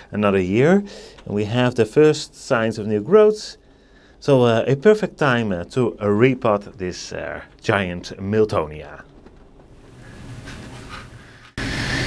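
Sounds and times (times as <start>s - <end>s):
faint room noise: 0.0s - 12.0s
loud steady hiss: 9.8s - 12.0s.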